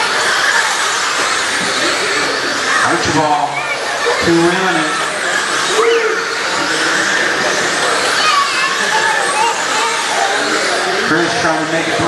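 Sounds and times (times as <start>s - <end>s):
rc car motors whining: 0.0s - 12.0s.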